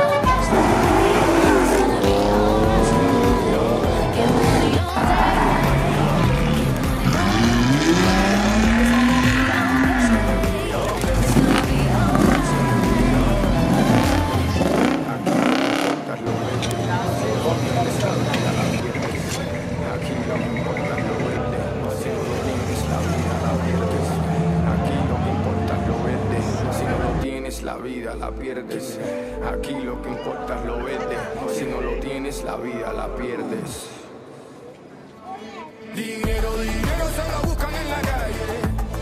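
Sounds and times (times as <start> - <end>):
background music: 0.0 - 39.0
car engines revving: 0.3 - 27.2.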